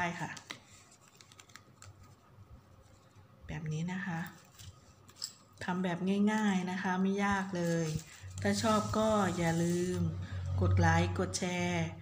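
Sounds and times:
woman speaking: 0.0s - 0.4s, 3.5s - 4.4s, 5.6s - 12.0s
faint clicks and rustling: 0.3s - 2.2s.

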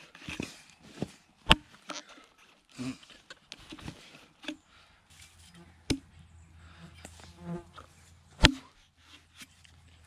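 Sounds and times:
axe chopping log: 1.4s - 1.7s, 5.9s - 6.1s, 8.3s - 8.8s.

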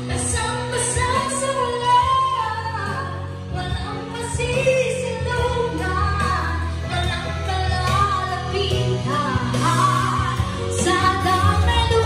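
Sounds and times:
backing track music: 0.0s - 12.0s
woman singing into microphone: 0.0s - 12.0s.

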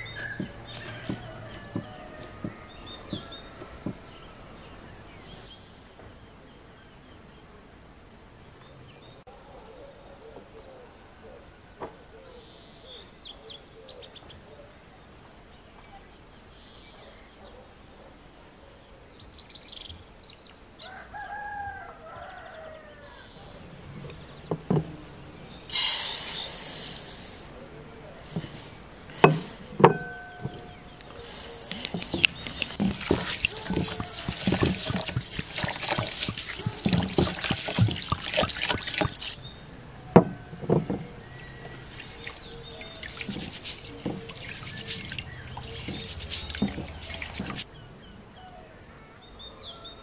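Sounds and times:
water rushing into a basin: 25.5s - 39.4s, 41.2s - 47.6s
hands splashing in water: 25.6s - 39.4s, 41.3s - 47.6s
ceramic plate knocking on basin: 29.2s - 30.7s.

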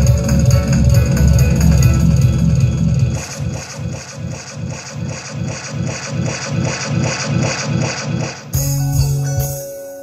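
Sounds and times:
heavy bass line: 0.0s - 9.6s
reggae dub over sound system: 0.0s - 10.0s.

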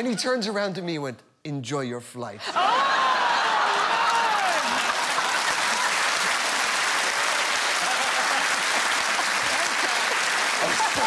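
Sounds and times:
audience applauding: 2.6s - 11.0s.

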